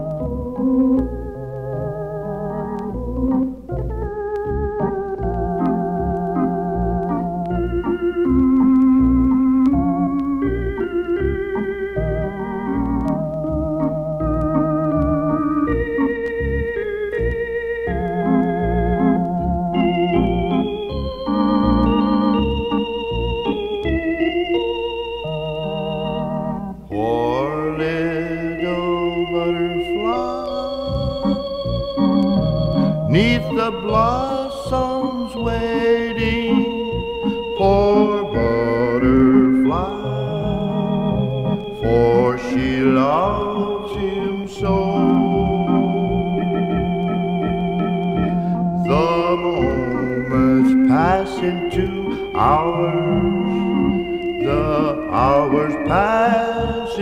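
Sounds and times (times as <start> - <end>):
electronic organ playing: 0.0 - 57.0
man singing: 26.9 - 31.3, 33.1 - 41.0, 41.8 - 46.1, 48.8 - 57.0.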